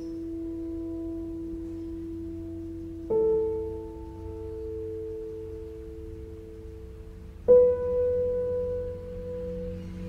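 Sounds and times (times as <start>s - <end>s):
low steady drone: 0.0s - 10.0s.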